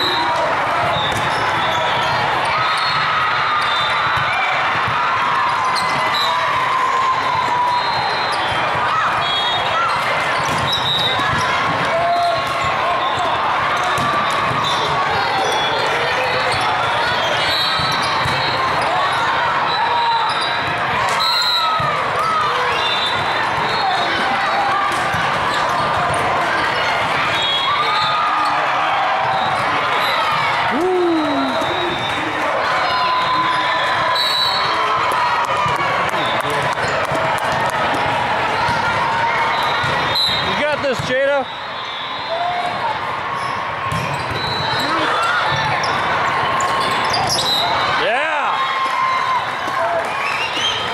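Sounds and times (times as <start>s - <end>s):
overlapping crowd voices: 0.0s - 50.9s
volleyballs hit and bouncing: 0.1s - 34.1s, 34.8s - 41.4s, 43.7s - 47.5s.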